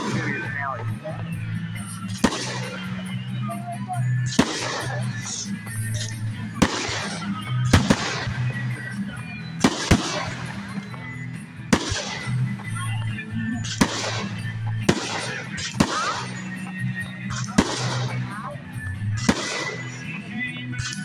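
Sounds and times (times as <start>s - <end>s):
fireworks bangs: 0.0s - 3.2s, 4.0s - 18.5s, 19.1s - 21.0s.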